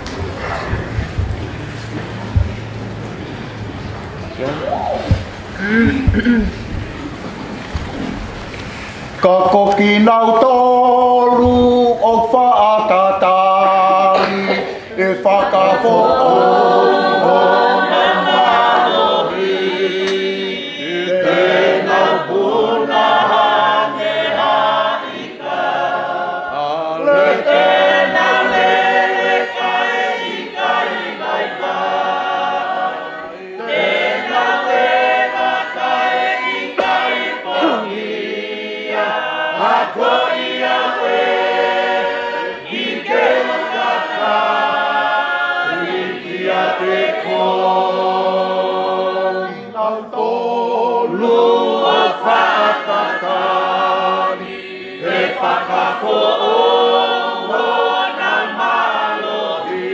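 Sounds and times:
congregation singing a hymn: 0.0s - 59.9s.

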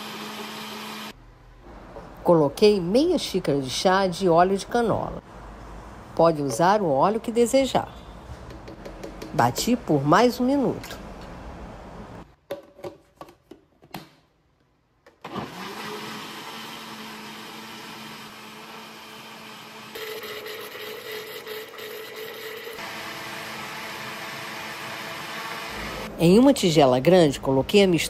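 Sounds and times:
blender motor running: 0.0s - 1.2s, 15.2s - 26.1s.

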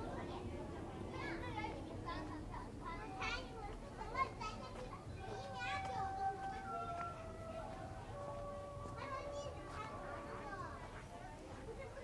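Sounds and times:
children playing: 0.0s - 12.0s.

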